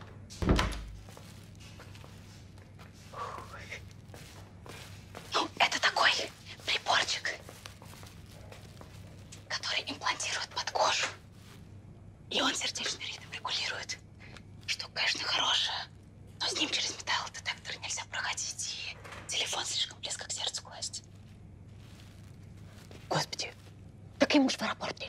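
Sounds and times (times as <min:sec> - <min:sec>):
faint low hum: 0:00.0 - 0:25.0
person whispering: 0:03.1 - 0:03.9, 0:05.3 - 0:07.5, 0:09.3 - 0:11.2, 0:12.3 - 0:14.0, 0:14.6 - 0:21.1, 0:23.1 - 0:23.6.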